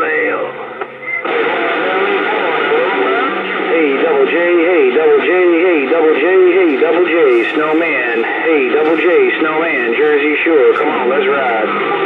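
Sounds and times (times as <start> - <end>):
faint garbled radio voice: 0.0 - 12.0
radio static rush: 0.0 - 12.0.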